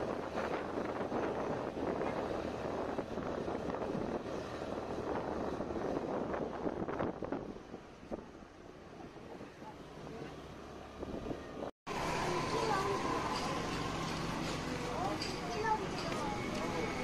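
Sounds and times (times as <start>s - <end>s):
wind buffeting microphone: 0.0s - 9.8s, 10.9s - 17.0s.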